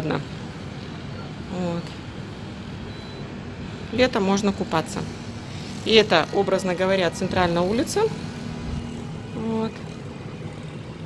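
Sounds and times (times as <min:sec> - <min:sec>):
distant city traffic hum: 0:00.0 - 0:11.0.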